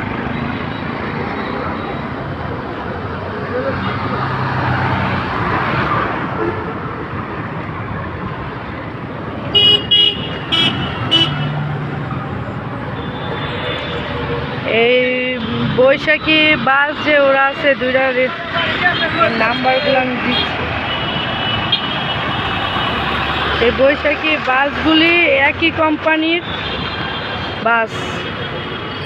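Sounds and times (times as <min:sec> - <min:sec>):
road traffic: 0:00.0 - 0:29.0
vehicle horn toots: 0:09.5 - 0:11.5.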